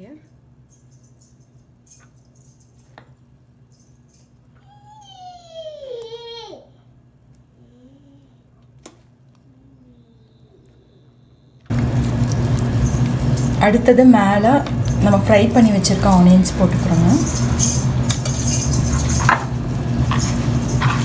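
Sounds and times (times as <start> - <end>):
steady low hum: 5.4 - 21.0.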